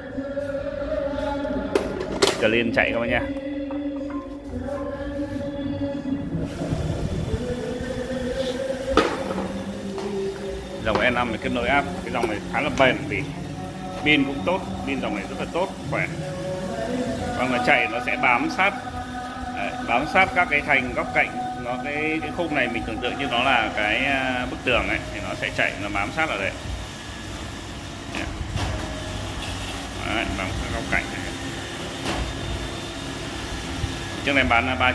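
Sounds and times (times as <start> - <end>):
karaoke singing with backing music: 0.0 - 34.9
robot vacuum running: 6.4 - 34.9.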